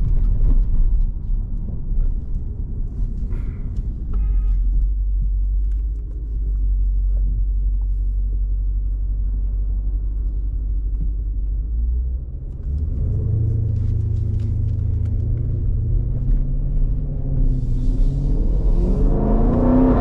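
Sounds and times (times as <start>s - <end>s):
car engine rumble from inside cabin: 0.0s - 20.0s.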